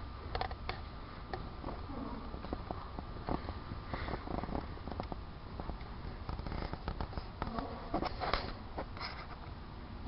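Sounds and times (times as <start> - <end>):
low steady rumble: 0.0 - 10.0
horse hooves on arena footing: 0.3 - 9.0.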